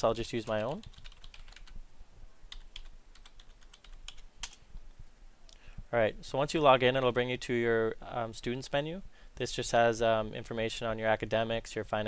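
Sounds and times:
computer keyboard keystrokes: 0.4s - 1.7s, 2.5s - 4.6s.

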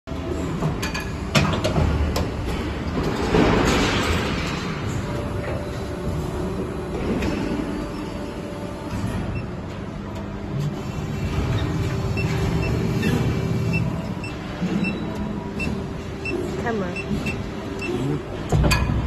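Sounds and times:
machinery rumble and hum: 0.0s - 19.0s.

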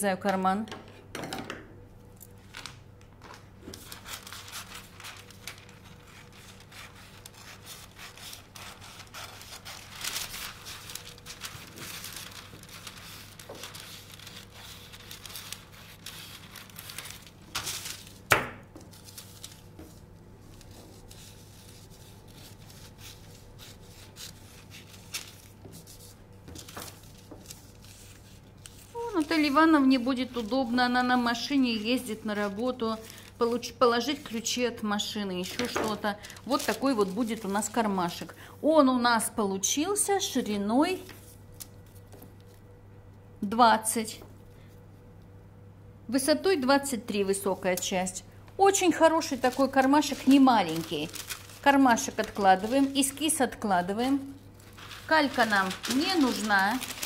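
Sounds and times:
paper rustling: 2.3s - 38.3s, 48.7s - 57.0s.

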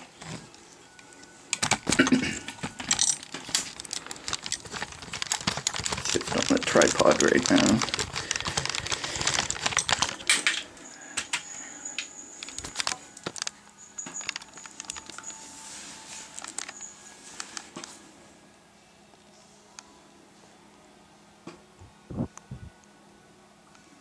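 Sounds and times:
phone handling rustling and clicks: 1.5s - 11.4s, 12.4s - 15.4s, 16.2s - 17.9s.

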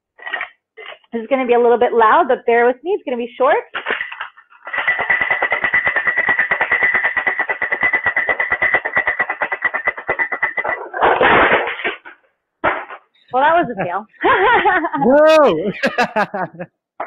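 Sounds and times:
ice rattling in cocktail shaker: 3.8s - 9.2s.

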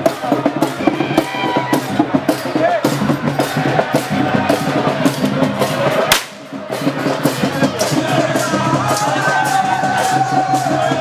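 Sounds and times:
fast drumming: 0.0s - 11.0s
loud crack: 6.1s - 6.4s.

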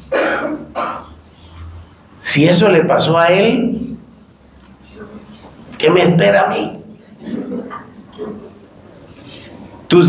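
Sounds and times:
man clearing his throat: 0.0s - 1.2s, 7.1s - 8.4s.

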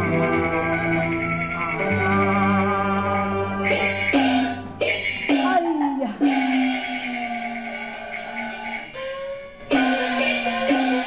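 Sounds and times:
traditional instrument ensemble: 0.0s - 11.0s.

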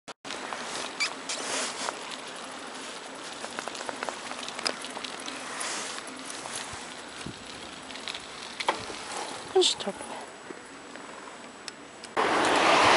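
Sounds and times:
small clicks and ticks: 0.3s - 9.4s
bicycle tyres crunching on asphalt: 0.3s - 12.9s.

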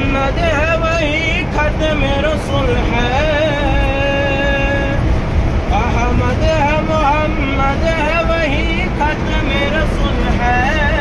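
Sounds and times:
vehicle low rumble: 0.0s - 11.0s.

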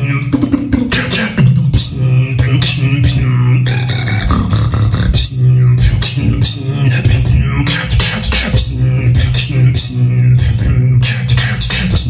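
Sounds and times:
hummed bass line: 0.0s - 12.0s
mouth percussion hits: 0.0s - 12.0s.

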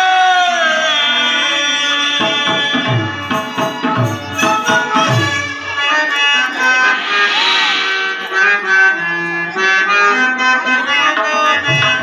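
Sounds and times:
harmonium melody: 0.1s - 7.1s, 7.7s - 12.0s.

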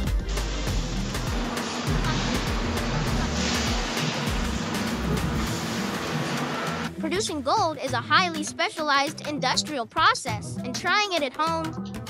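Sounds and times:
background music with bass: 0.0s - 12.0s
steady rushing noise: 0.3s - 7.0s.

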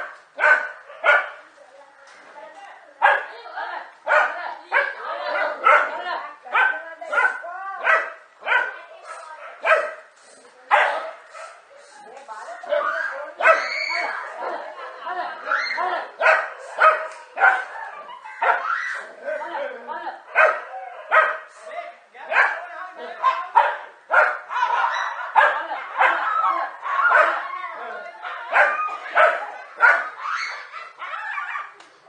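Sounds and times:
dogs barking: 0.0s - 1.4s, 3.0s - 3.4s, 4.0s - 10.1s, 10.7s - 11.7s, 12.7s - 19.2s, 20.2s - 21.6s, 22.3s - 31.8s
people's voices: 0.0s - 32.0s.

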